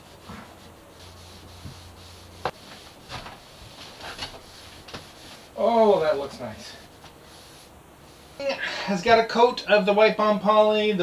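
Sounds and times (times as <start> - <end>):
cloth wiping wood: 0.0 - 9.0.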